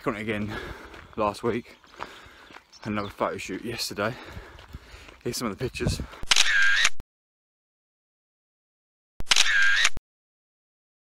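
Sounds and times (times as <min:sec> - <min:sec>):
camera shutter: 0:06.2 - 0:07.0, 0:09.2 - 0:10.0.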